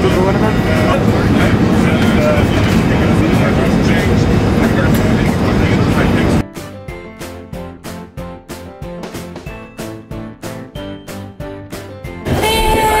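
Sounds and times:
airliner engines and airflow rumble: 0.0 - 6.4
passengers talking: 0.0 - 6.4
background music with regular beat: 6.4 - 13.0.

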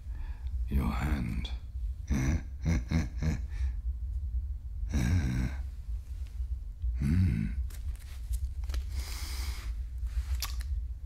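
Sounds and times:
steady low hum: 0.0 - 11.0
man chuckling and humming: 2.0 - 3.8, 4.9 - 5.7, 6.9 - 7.6
man sighing mm: 6.9 - 7.6.

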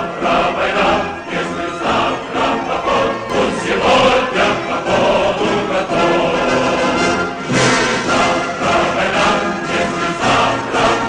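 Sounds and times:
choir singing: 0.0 - 11.0
instrumental accompaniment: 0.0 - 11.0.

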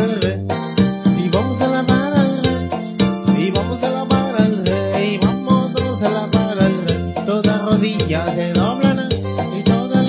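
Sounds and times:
keyboard playing upbeat song: 0.0 - 10.0.

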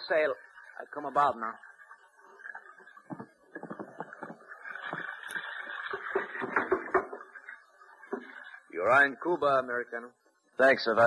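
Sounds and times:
scattered knocks: 3.1 - 5.1, 6.0 - 7.3.

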